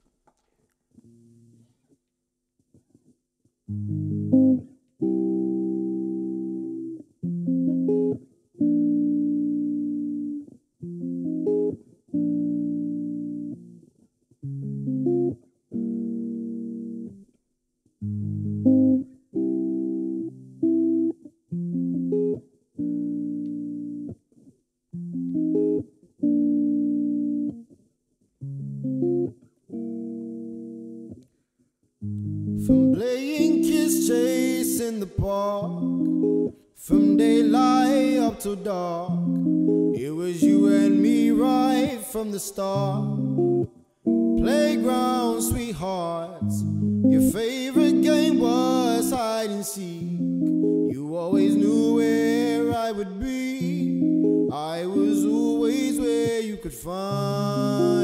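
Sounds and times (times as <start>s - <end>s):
clean electric guitar chords: 3.7s - 13.8s, 14.4s - 17.2s, 18.0s - 24.2s, 25.0s - 27.6s, 28.4s - 31.2s, 32.0s - 58.0s.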